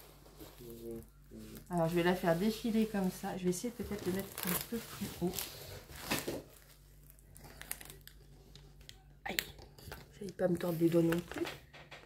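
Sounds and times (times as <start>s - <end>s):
plastic film rustling and crinkling: 0.0s - 11.9s.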